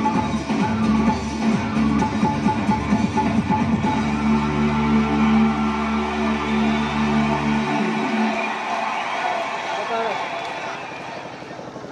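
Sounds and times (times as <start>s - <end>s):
bass: 0.0s - 11.9s.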